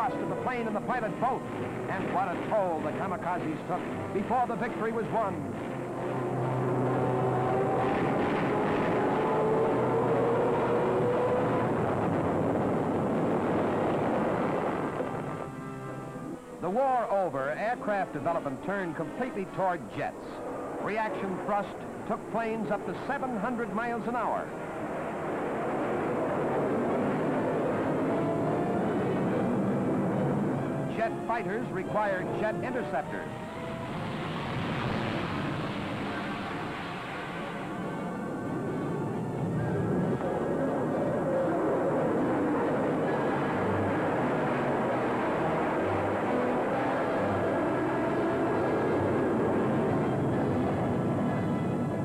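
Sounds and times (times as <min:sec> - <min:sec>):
aircraft engine roar: 0:00.0 - 0:52.0
rising engine whine: 0:00.0 - 0:52.0.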